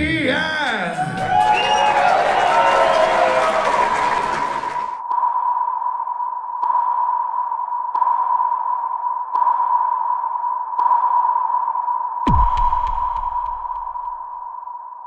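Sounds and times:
steady tone: 12.3s - 14.4s.

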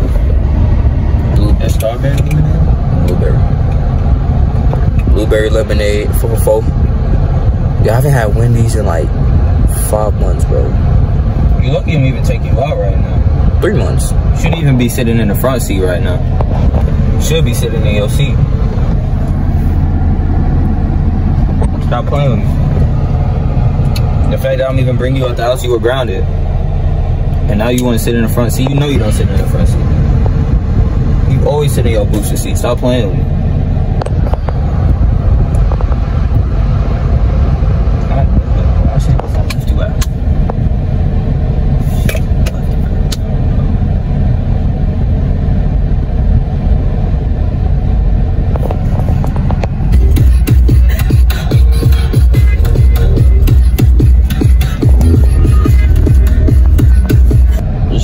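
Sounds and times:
car engine rumble inside cabin: 0.0s - 58.0s.

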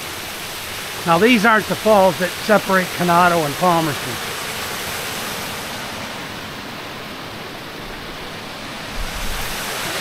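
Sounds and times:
water rushing over a dam: 0.0s - 10.0s.

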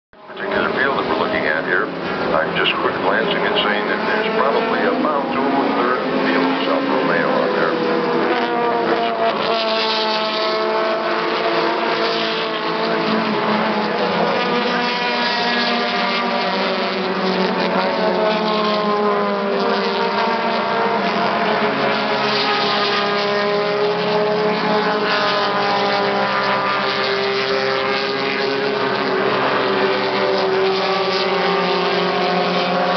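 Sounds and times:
race car engines passing: 0.2s - 32.9s.

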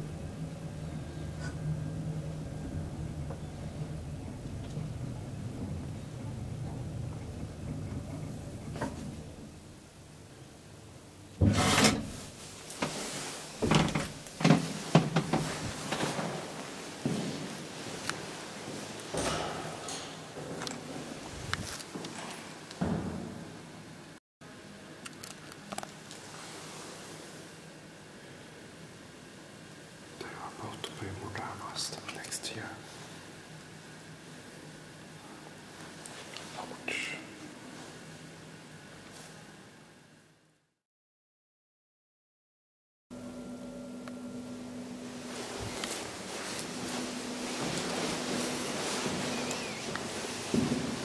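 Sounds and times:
door scraping rub: 11.4s - 16.0s
elevator door thud: 13.6s - 16.4s, 19.1s - 20.6s, 22.8s - 23.5s
person whispering: 30.2s - 32.9s, 36.5s - 37.5s.

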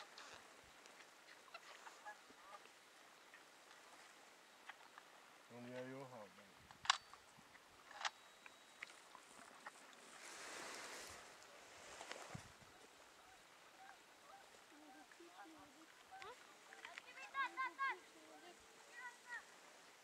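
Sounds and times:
sharp clicks: 6.7s - 7.2s
rustling noise: 9.5s - 12.6s.

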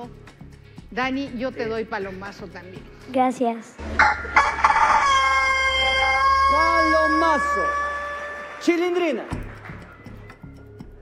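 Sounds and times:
rooster crowing: 4.0s - 8.6s.

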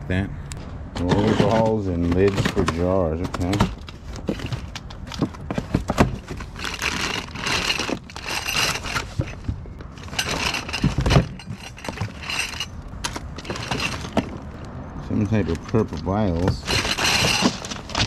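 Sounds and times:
cardboard flaps rustling: 1.0s - 8.1s
plastic bags crinkling: 1.4s - 9.4s.

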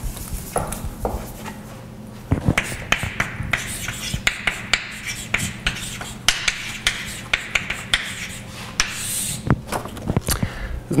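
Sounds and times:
steady low hum: 0.0s - 11.0s
chalk tapping and scratching on blackboard: 2.4s - 9.5s.

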